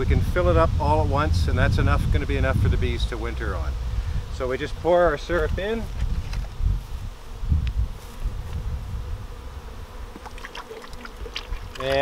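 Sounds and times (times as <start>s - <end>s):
honeybees buzzing: 1.7s - 12.0s.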